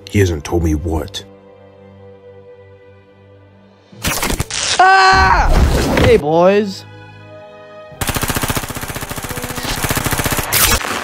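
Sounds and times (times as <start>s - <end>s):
machine-gun fire: 8.0s - 11.0s.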